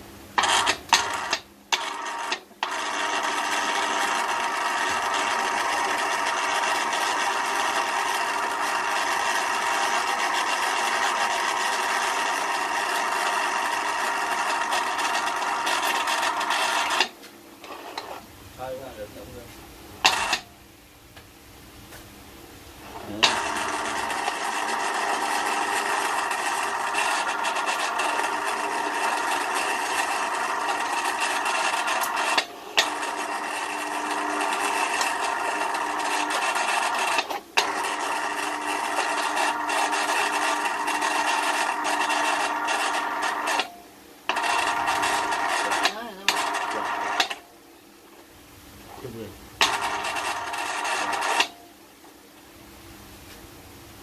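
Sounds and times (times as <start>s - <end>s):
electric winch motor whining: 0.4s - 18.2s, 22.8s - 43.7s, 44.3s - 47.4s, 49.6s - 51.6s.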